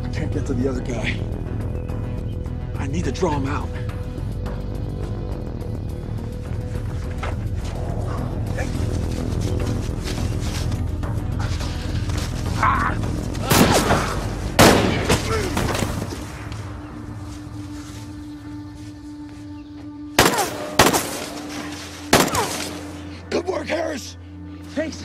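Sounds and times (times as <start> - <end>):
low tense film score: 0.0 - 25.0
loud gunshots with echo: 14.6 - 15.3, 20.2 - 22.9.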